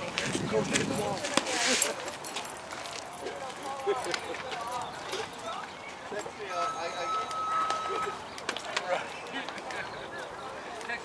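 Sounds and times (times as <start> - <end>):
faint voices talking and calling: 0.0 - 11.0.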